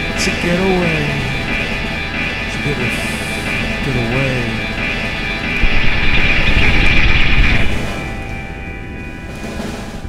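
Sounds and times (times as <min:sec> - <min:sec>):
instrumental rock band: 0:00.0 - 0:10.0.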